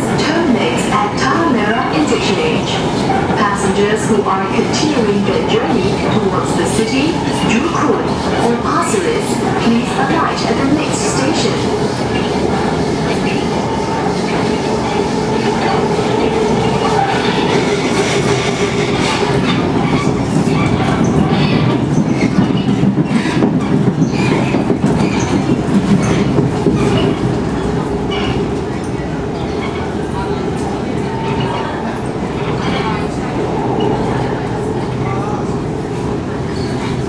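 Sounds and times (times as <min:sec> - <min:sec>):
train wheels rumbling on rail: 0:00.0 - 0:37.0.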